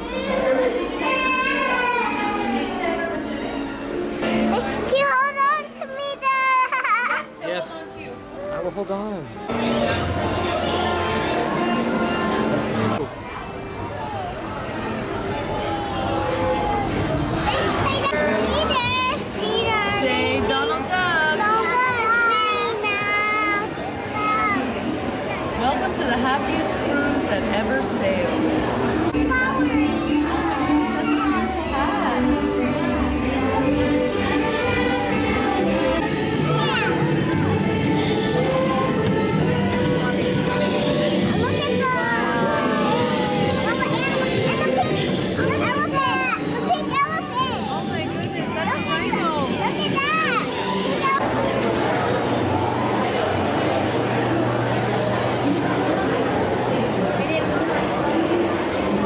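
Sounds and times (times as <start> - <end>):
children chattering: 0.0 - 59.0.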